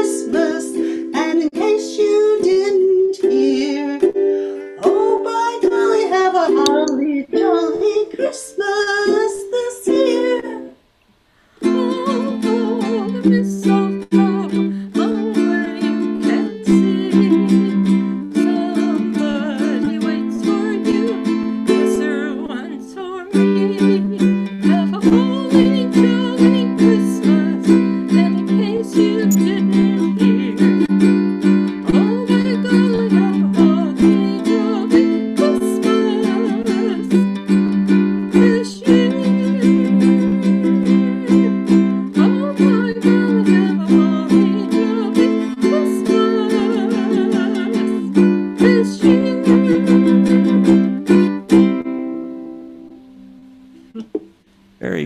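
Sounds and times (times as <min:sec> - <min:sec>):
ukulele strumming chords: 0:00.0 - 0:10.7, 0:11.6 - 0:55.0.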